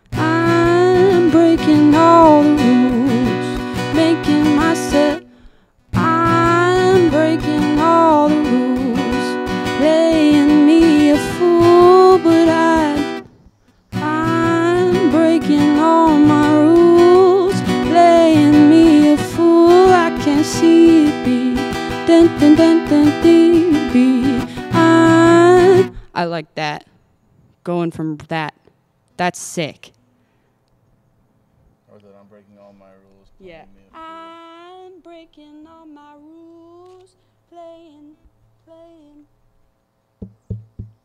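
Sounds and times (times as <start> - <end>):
acoustic guitar strumming: 0.0 - 13.3, 13.9 - 26.0
woman singing: 0.1 - 5.4, 6.0 - 13.2, 14.0 - 26.3, 33.9 - 39.3.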